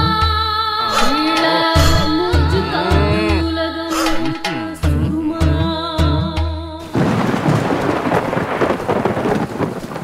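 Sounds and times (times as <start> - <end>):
heavy rain: 6.8 - 10.0.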